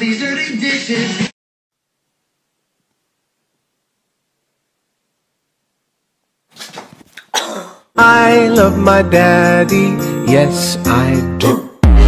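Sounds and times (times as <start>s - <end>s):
rough hacking coughs: 7.2s - 7.9s.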